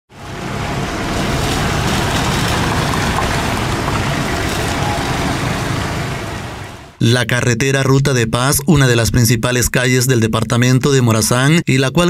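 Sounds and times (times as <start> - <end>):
motorcycles passing: 0.1 - 7.0
pickup truck passing: 0.1 - 7.0.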